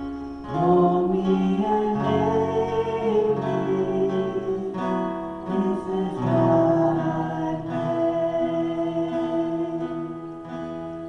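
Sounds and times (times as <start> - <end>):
worship band playing slow song: 0.0 - 11.0.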